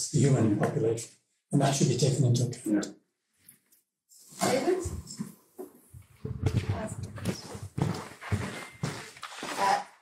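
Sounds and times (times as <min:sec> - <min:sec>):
muffled voices: 0:00.0 - 0:02.9.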